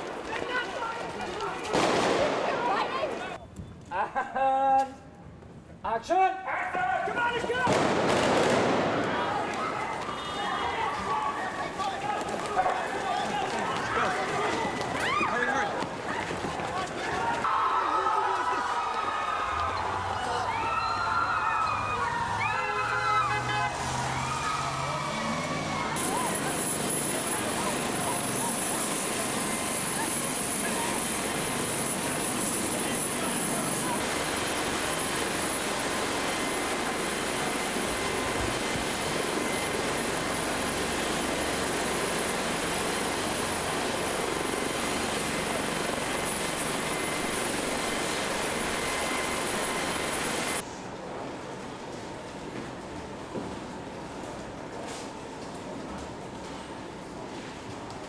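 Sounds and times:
helicopter running: 24.4s - 50.6s.

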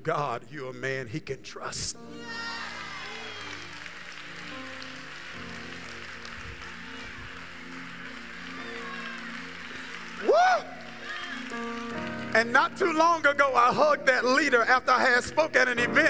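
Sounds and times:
keyboard chords: 2.0s - 16.0s
crowd cheering and applause: 2.1s - 13.4s
person shouting woo: 2.2s - 3.6s, 10.2s - 11.5s.

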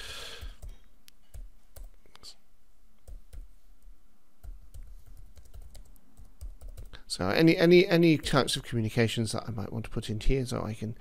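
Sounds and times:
typing on computer keyboard: 4.4s - 7.0s.

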